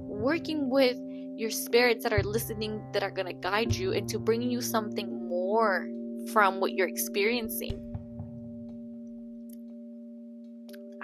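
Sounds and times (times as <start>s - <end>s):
ambient drone music: 7.6s - 11.0s.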